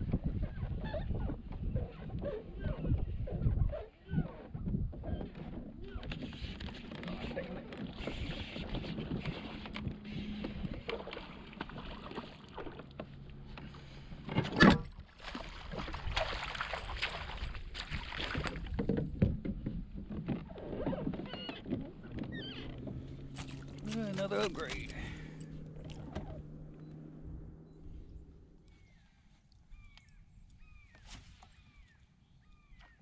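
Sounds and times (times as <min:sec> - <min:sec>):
water splashing: 0:06.4 - 0:27.2
sharp splash: 0:14.9 - 0:18.7.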